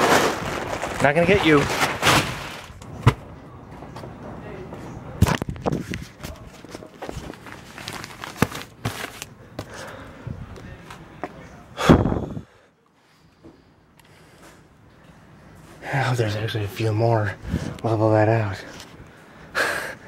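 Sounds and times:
paper rustling: 0.0 - 2.8, 5.3 - 9.3
plastic wrapping rustling: 0.0 - 2.8, 5.4 - 9.3
newspaper bundles thumping: 0.0 - 3.3, 6.7 - 9.8.

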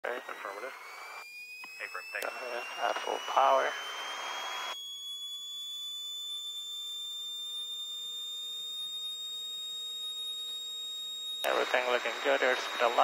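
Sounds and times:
electrical whine rising in pitch: 0.0 - 13.0.

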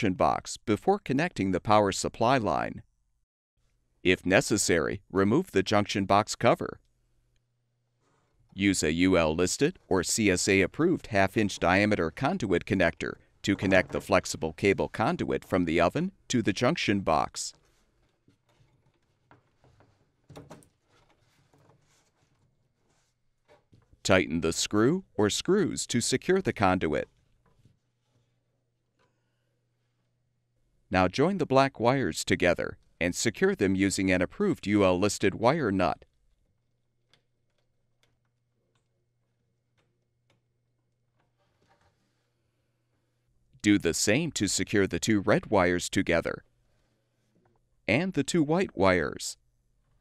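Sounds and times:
faint handling noises: 17.5 - 24.1, 27.0 - 30.7, 36.0 - 43.4.

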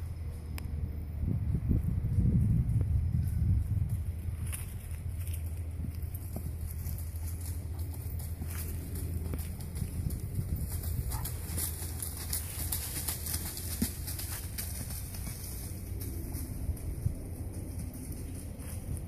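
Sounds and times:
horse hoofbeats on sandy ground: 0.0 - 19.0
low wind rumble: 0.0 - 19.0
leaves rustling: 3.2 - 19.0.

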